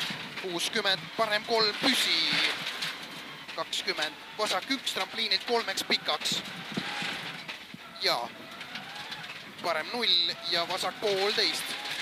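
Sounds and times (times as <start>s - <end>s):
gravel road noise: 0.0s - 12.0s
rally car engine running: 0.0s - 12.0s
person speaking: 9.6s - 11.7s.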